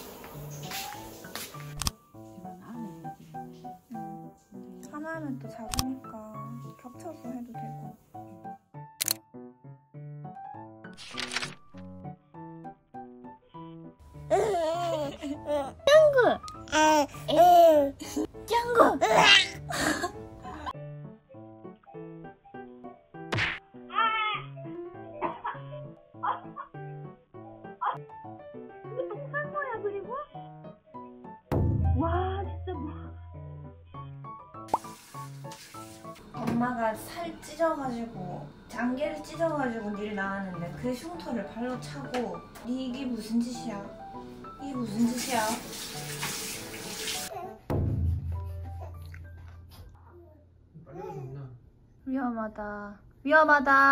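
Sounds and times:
background music: 0.0s - 50.0s
sharp whack: 23.3s - 23.7s
water running from a tap: 34.7s - 38.2s, 44.6s - 47.3s.

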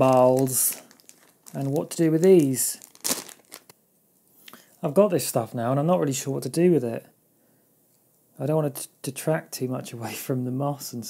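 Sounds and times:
plastic bag crinkling: 0.0s - 3.7s.

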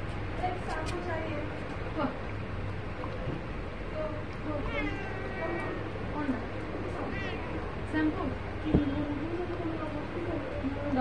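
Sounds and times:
cat meowing: 4.6s - 6.0s, 6.9s - 7.8s.

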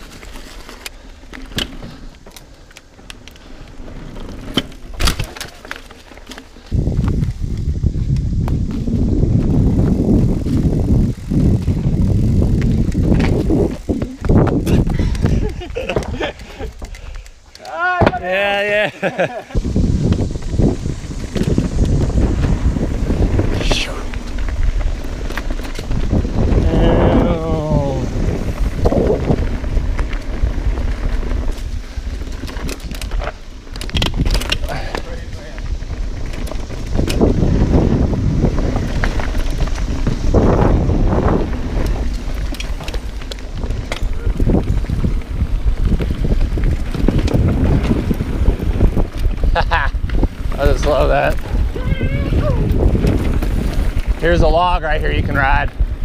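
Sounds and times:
bike tyres rattling on dirt: 0.0s - 56.0s
wind buffeting microphone: 6.6s - 56.0s
rider calling out: 17.6s - 19.4s, 23.4s - 24.3s, 26.5s - 28.3s, 50.6s - 52.8s.

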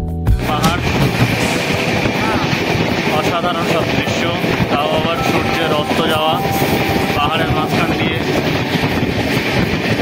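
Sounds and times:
train wheels rumbling: 0.4s - 10.0s
passengers chattering: 0.6s - 10.0s.

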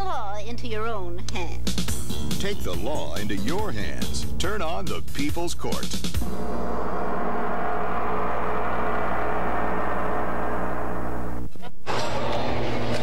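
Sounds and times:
large gong ringing: 6.2s - 11.5s.

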